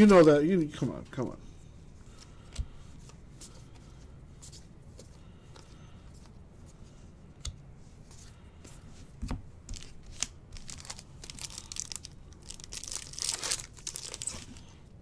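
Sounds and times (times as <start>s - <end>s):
foil wrapper tearing and crinkling: 9.8s - 14.7s.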